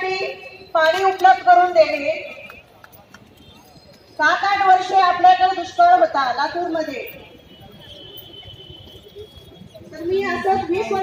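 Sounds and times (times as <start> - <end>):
faint crowd background: 0.0 - 11.0.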